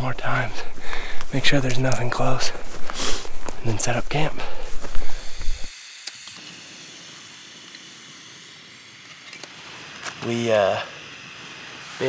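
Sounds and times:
gas burner hissing: 0.0s - 12.0s.

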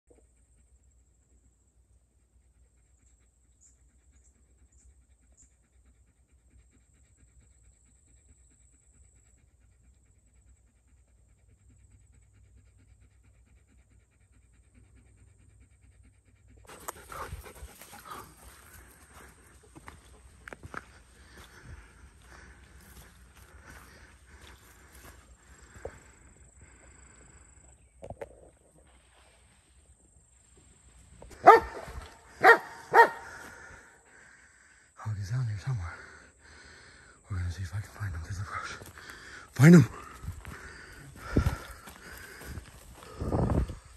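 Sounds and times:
dog panting: 2.4s - 27.4s, 37.7s - 43.9s
movement through brush: 16.7s - 26.2s, 38.0s - 43.9s
dog barking loudly: 31.4s - 33.7s.

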